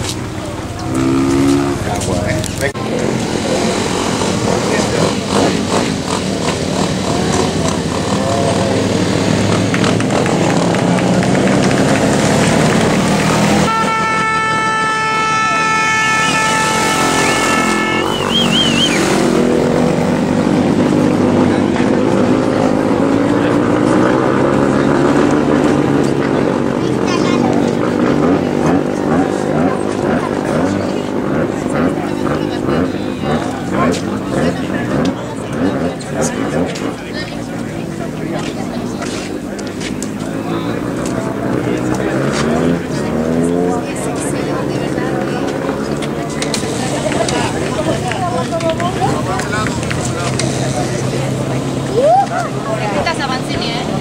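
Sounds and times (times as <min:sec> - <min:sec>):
crowd chatter: 0:00.0 - 0:54.0
motorcycle engines revving: 0:00.0 - 0:54.0
steady horn tone: 0:13.3 - 0:20.0.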